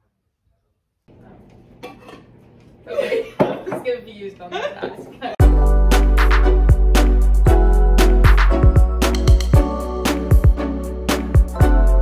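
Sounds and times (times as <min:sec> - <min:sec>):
dishes and cutlery clattering: 0:01.7 - 0:02.5.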